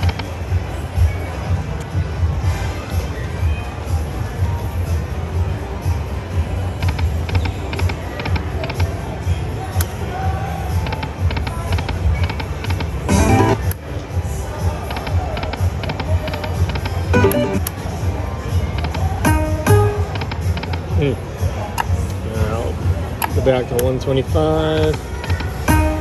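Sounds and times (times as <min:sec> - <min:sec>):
low background music: 0:00.0 - 0:26.0
slot machine reels ticking: 0:11.4 - 0:13.6, 0:15.9 - 0:17.7.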